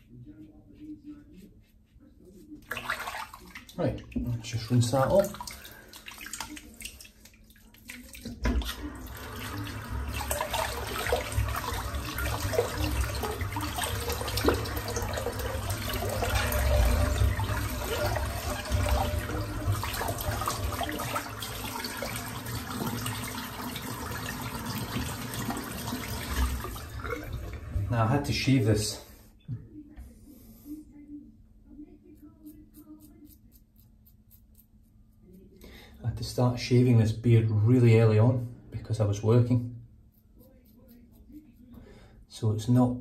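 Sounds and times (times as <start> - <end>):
water splashing: 2.7 - 28.2
tap water running into sink: 5.0 - 28.2.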